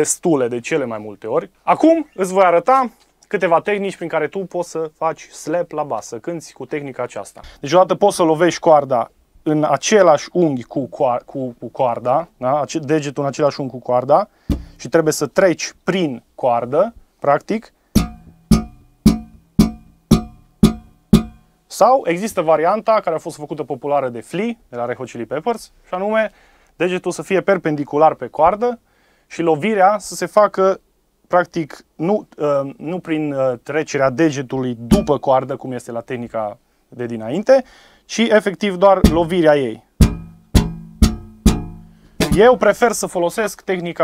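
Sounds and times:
electric bass thumb slaps: 0:14.5 - 0:14.8, 0:18.0 - 0:21.4, 0:39.0 - 0:39.4, 0:40.0 - 0:42.5.

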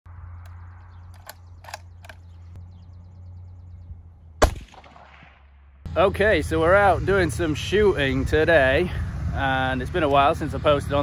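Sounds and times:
rifle shot with echo: 0:04.4 - 0:05.7.

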